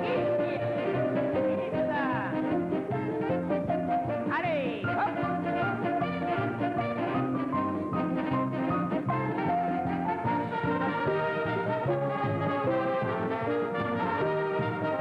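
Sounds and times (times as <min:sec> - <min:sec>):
brass band music: 0:00.0 - 0:15.0.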